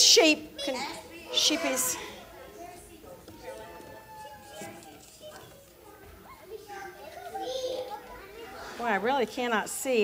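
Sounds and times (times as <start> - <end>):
children chattering: 0.2 - 10.0.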